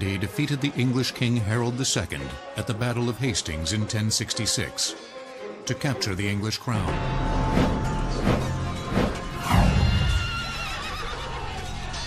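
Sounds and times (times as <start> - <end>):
music: 0.0 - 12.0
falling whoosh: 7.6 - 10.6
horse whinnying: 9.6 - 11.5.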